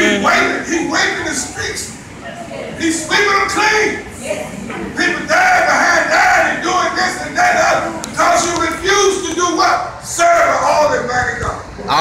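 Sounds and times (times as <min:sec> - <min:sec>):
man shouting sing-song preaching: 0:00.0 - 0:01.9, 0:02.8 - 0:04.0, 0:05.0 - 0:11.5.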